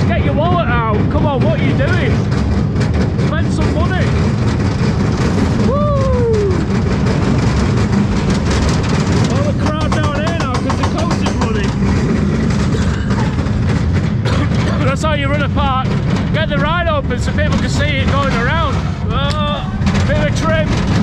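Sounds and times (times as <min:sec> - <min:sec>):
roller coaster rumbling on track: 0:00.0 - 0:21.0.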